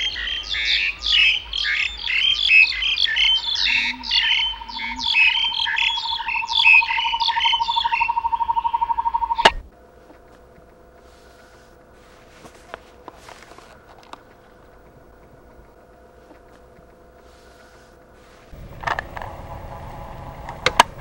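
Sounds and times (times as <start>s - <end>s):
rapid bird trill: 0.0s - 12.3s
faint hum: 0.0s - 21.0s
forest birds chirping: 0.0s - 21.0s
click: 20.5s - 20.9s.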